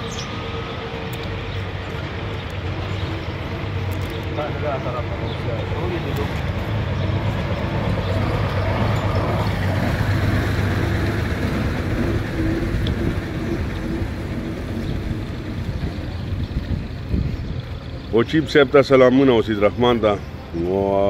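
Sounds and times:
vehicle engine running: 0:00.0 - 0:21.0.

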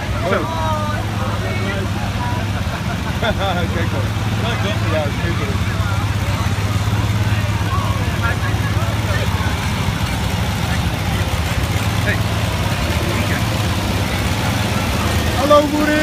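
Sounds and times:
people talking in crowd: 0:00.0 - 0:16.0
tractor engine droning: 0:00.0 - 0:16.0.

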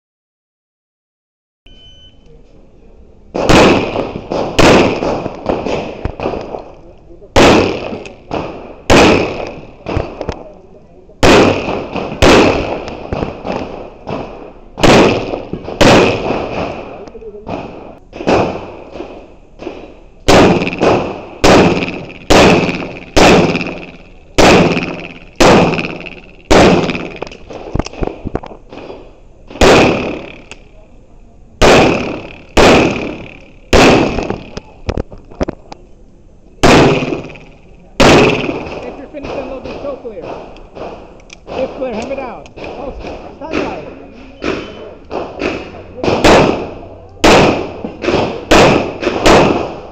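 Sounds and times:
pistol shots echoing: 0:03.4 - 0:06.7, 0:07.4 - 0:10.4, 0:11.2 - 0:30.7, 0:31.6 - 0:34.8, 0:36.6 - 0:49.9.

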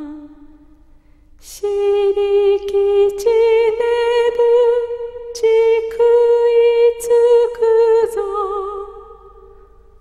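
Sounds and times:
woman singing a lullaby: 0:01.4 - 0:09.3.

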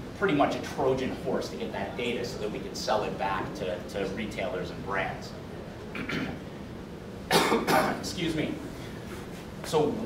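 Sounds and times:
man coughing: 0:06.0 - 0:06.4, 0:07.3 - 0:08.1.

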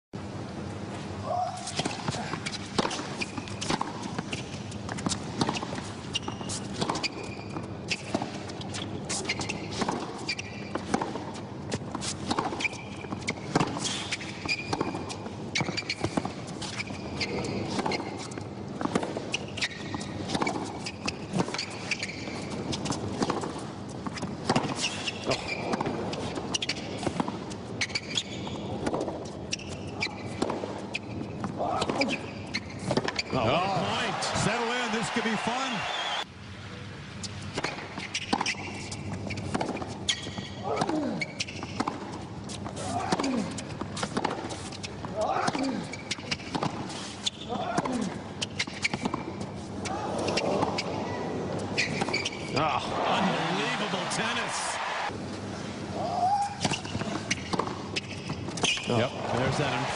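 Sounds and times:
shoes squeaking on court: 0:01.4 - 0:36.2, 0:37.2 - 0:55.5, 0:56.2 - 0:59.9
racket striking tennis ball: 0:01.6 - 0:07.1, 0:09.1 - 0:16.8, 0:17.7 - 0:27.5, 0:37.5 - 0:45.7, 0:46.3 - 0:49.3, 0:56.6 - 0:59.9.

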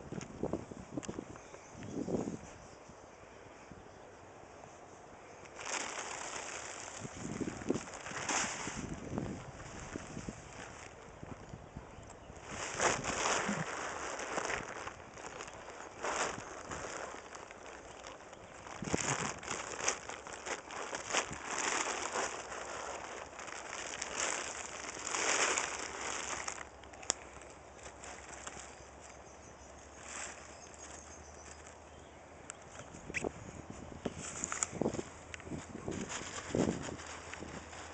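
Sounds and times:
plastic tarp crinkling: 0:05.5 - 0:11.4, 0:12.3 - 0:29.1, 0:34.1 - 0:37.9.

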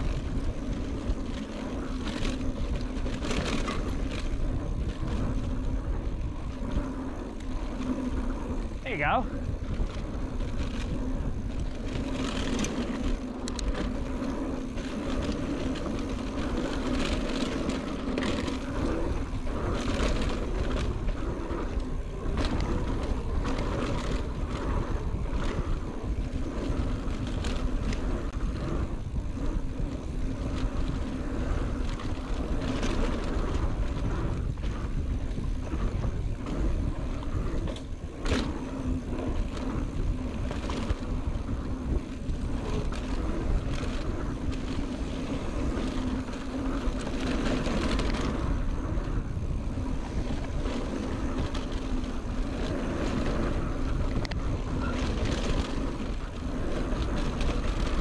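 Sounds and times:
bike rattling over bumps: 0:00.0 - 0:58.0
bike tyre noise: 0:00.0 - 0:58.0
wind rushing over microphone: 0:00.0 - 0:58.0.

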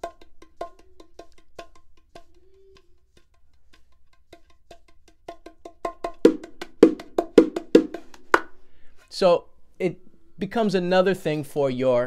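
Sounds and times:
bongos played by hand: 0:00.0 - 0:08.8.

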